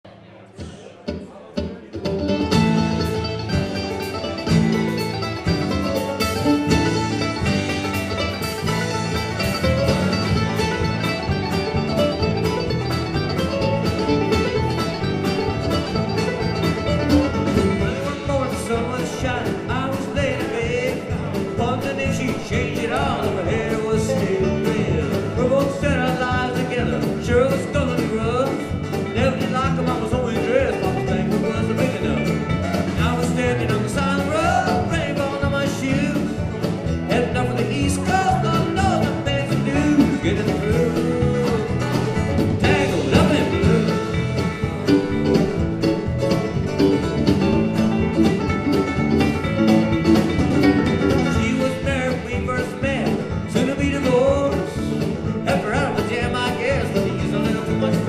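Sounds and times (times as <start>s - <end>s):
bass: 0.0s - 58.0s
mandolin: 0.0s - 58.0s
acoustic guitar: 0.1s - 58.0s
banjo: 0.1s - 58.0s
bluegrass band playing: 0.1s - 58.0s
drum-kit beat: 0.6s - 58.0s
man singing: 17.5s - 44.7s, 50.9s - 58.0s.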